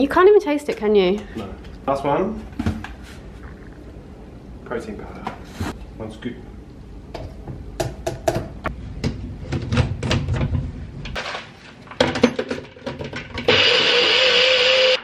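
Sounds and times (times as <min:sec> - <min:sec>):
blender motor whining: 0:13.5 - 0:15.0.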